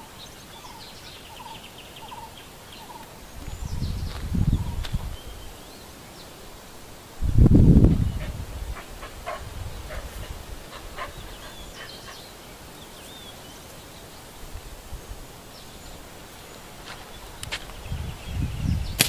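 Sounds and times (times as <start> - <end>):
birds chirping: 0.0 - 6.7, 7.6 - 19.0.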